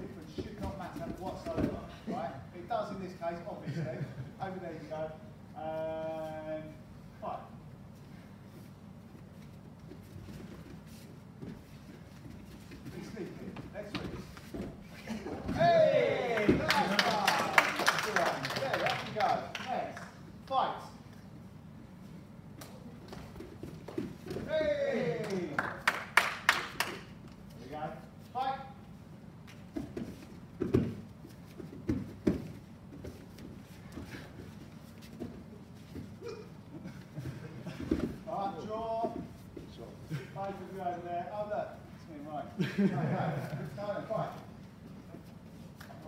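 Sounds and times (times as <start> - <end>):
bare feet on foam mats: 0.0 - 2.3, 7.9 - 17.2, 29.4 - 40.8
low room hum: 0.0 - 46.0.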